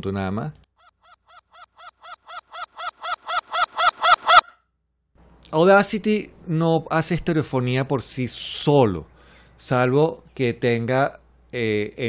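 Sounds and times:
reversed hen clucks with echo: 1.0 - 4.6.

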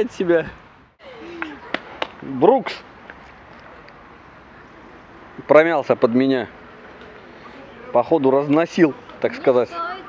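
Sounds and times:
outdoor street background noise: 0.0 - 10.0.

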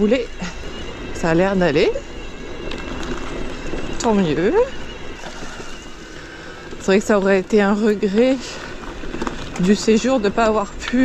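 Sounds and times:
bike tyres rumbling on dirt: 0.0 - 11.0
faint high whine: 0.0 - 11.0.

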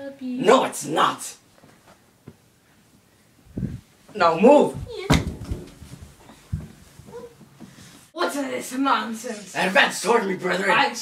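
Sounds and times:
dull thump: 4.7 - 7.8.

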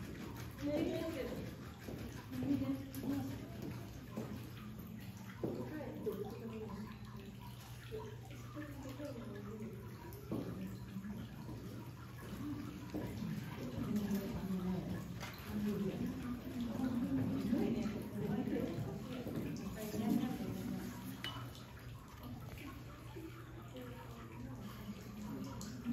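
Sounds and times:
people talking indistinctly: 12.2 - 21.6.

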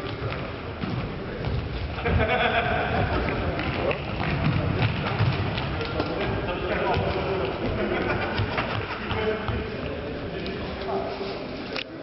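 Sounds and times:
feet on hall floor: 0.0 - 11.8.

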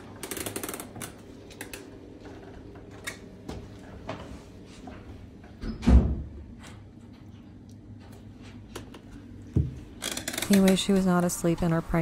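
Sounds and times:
wooden door creaking open: 10.0 - 10.9.

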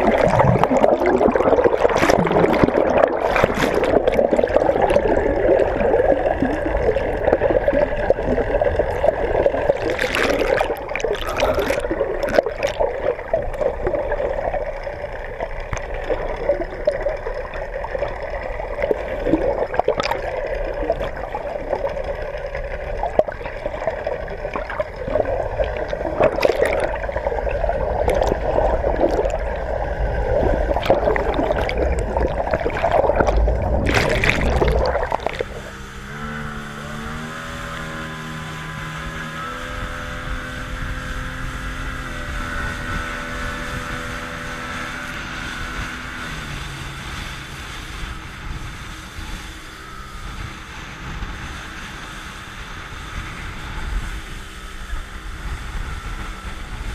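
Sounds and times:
underwater clicks and pops: 0.0 - 5.0, 9.7 - 13.7, 24.5 - 27.1, 28.0 - 29.5, 30.5 - 35.6
loud splash: 0.0 - 14.4, 23.0 - 36.3
outboard engine running: 0.0 - 56.9
rushing water: 0.0 - 56.9
underwater water wash: 0.0 - 56.9.

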